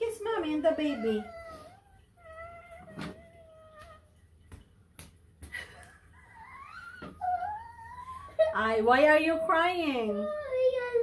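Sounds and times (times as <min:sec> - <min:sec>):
girl crying: 0:06.2 - 0:08.6, 0:10.2 - 0:11.0.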